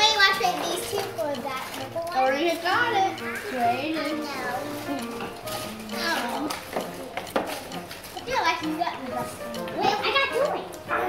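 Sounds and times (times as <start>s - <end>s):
background music: 0.0s - 11.0s
children chattering: 0.0s - 11.0s.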